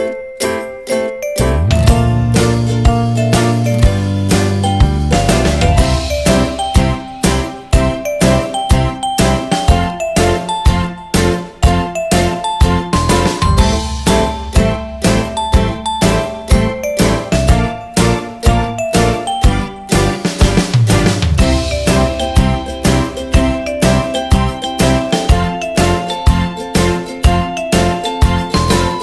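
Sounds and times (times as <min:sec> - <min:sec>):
jingling bell melody with beat: 0:00.0 - 0:29.0.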